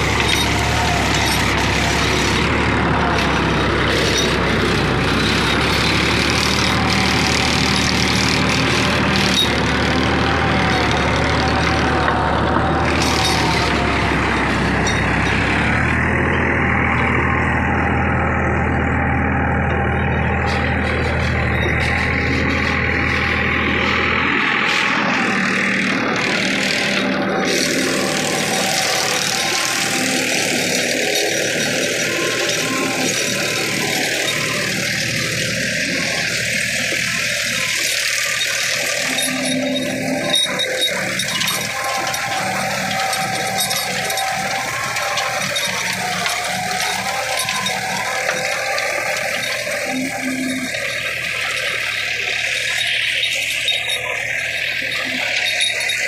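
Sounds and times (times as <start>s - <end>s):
rotavator blades churning soil: 0.0s - 56.0s
tractor diesel engine under load: 0.0s - 56.0s.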